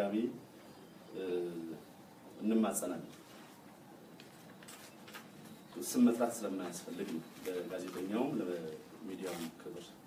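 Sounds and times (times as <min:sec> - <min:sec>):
man speaking into microphone: 0:00.0 - 0:00.4, 0:01.1 - 0:03.2, 0:05.7 - 0:10.0.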